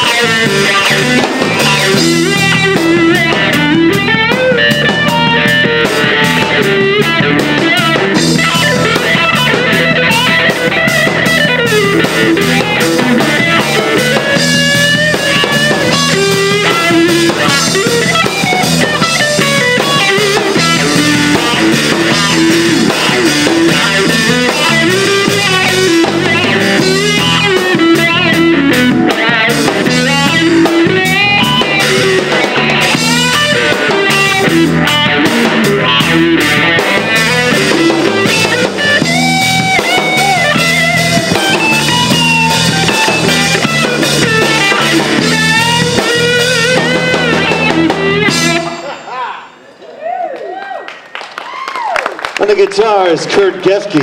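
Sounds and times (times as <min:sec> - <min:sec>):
electric bass: 0:00.0 - 0:49.1
drum kit groove: 0:00.0 - 0:49.6
electric guitar lead lines: 0:00.0 - 0:49.7.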